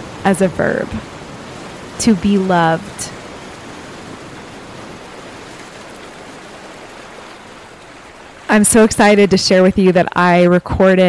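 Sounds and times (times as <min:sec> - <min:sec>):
steady rushing noise: 0:00.0 - 0:09.6.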